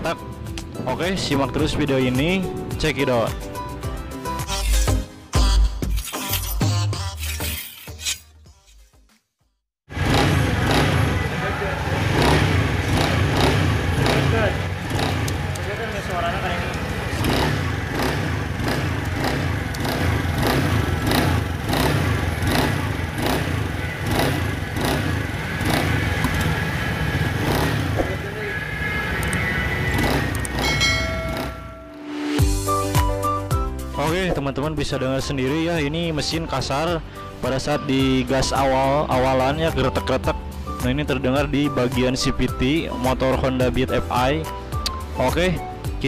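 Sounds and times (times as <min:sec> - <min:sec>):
scooter engine running: 0:09.9 - 0:31.8
short music: 0:30.6 - 0:33.7.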